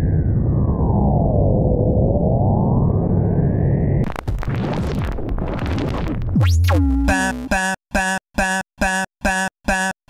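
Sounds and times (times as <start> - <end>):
loud crackling static: 4.0 - 6.4.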